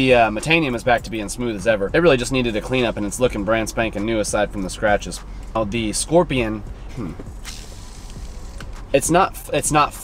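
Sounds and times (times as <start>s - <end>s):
fishing reel gears whirring: 7.4s - 8.8s.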